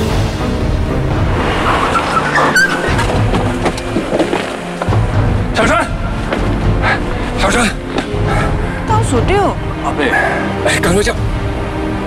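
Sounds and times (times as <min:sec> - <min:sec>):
car engine and road noise: 0:00.0 - 0:09.4
dramatic background music: 0:00.0 - 0:12.0.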